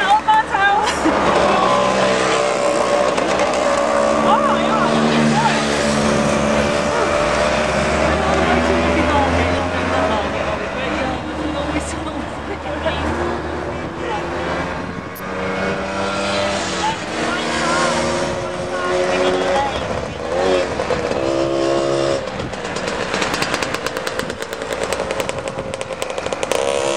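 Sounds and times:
car and scooter engines in traffic: 0.0s - 26.9s
scooter engine running close by: 0.0s - 26.9s.

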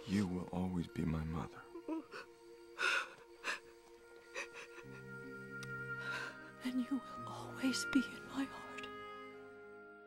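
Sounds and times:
soft film score music: 0.0s - 10.0s.

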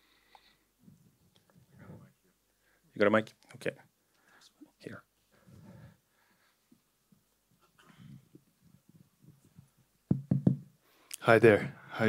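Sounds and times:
microphone tapped: 10.1s - 10.7s.

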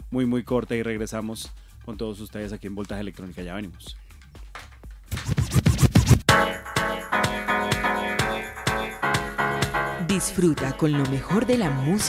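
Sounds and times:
turntable scratching: 5.0s - 6.3s.

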